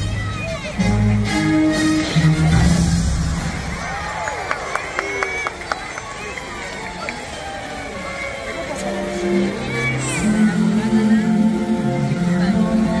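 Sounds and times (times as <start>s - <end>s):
crowd voices: 0.0s - 13.0s
show music: 0.0s - 13.0s.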